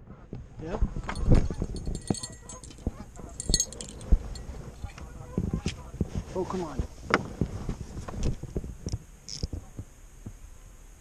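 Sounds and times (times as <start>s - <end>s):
knocks and clinks of fishing rod: 1.1s - 5.0s.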